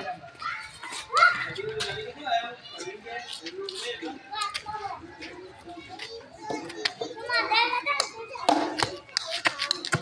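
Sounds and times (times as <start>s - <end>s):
children calling out: 0.3s - 1.9s, 4.3s - 10.0s.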